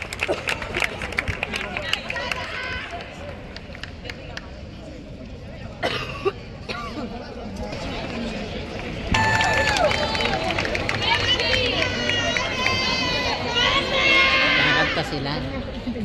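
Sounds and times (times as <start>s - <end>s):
audience chatter: 0.0s - 16.0s.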